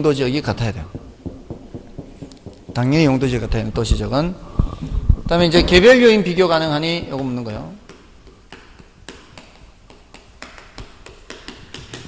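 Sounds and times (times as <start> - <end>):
chalk tapping and scraping on blackboard: 0.9 - 5.4, 7.1 - 12.0.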